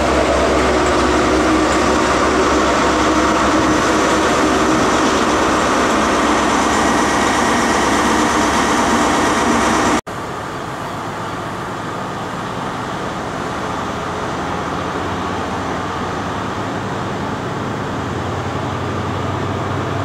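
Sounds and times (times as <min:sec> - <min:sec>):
train wheels rushing on rail: 0:00.0 - 0:20.0.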